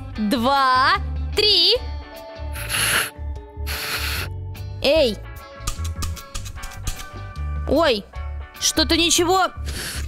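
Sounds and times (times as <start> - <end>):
children's music with low beat: 0.0 - 10.0
breathy puffs into toy trumpet: 2.6 - 4.3.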